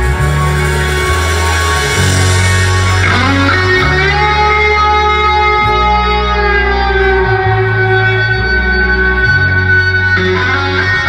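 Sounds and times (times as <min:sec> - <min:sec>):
bass guitar notes: 0:00.0 - 0:11.0
electric guitars ringing chords: 0:00.0 - 0:11.0.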